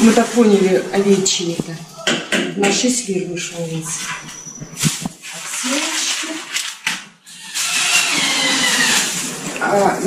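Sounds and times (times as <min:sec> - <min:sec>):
plastic bags rustling: 0:00.0 - 0:02.0, 0:03.1 - 0:07.0, 0:07.6 - 0:10.0.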